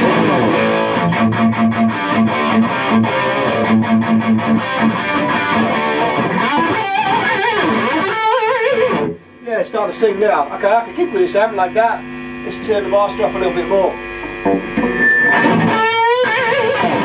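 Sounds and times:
distorted electric guitar riff: 0.0s - 17.0s.

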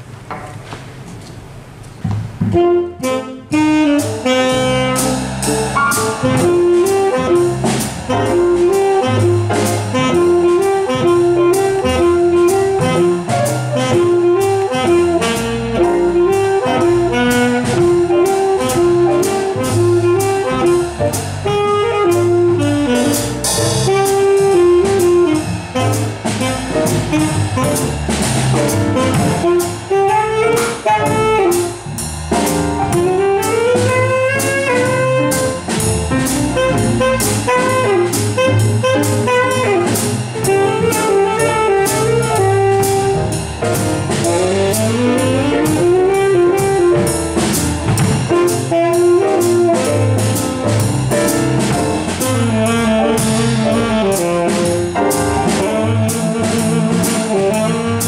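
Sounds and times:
acoustic piano: 0.0s - 58.0s
upright double bass: 2.0s - 58.0s
alto saxophone melody: 2.5s - 58.0s
drum kit cymbals: 2.5s - 58.0s.

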